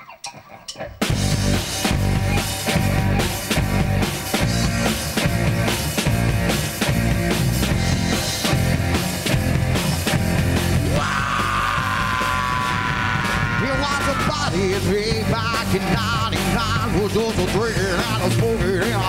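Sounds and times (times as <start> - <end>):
drum kit: 0.0 - 19.0
electric guitar: 0.0 - 19.0.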